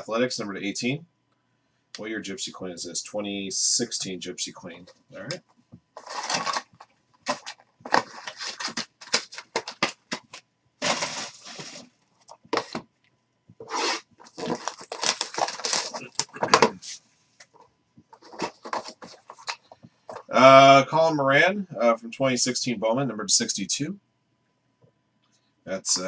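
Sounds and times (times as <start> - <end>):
cardboard box scraping and rustling: 6.0 - 6.7, 7.3 - 11.9.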